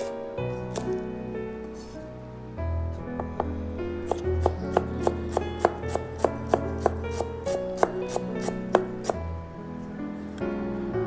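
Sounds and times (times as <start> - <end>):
background music: 0.0 - 11.0
knife chopping on cutting board: 4.1 - 9.2.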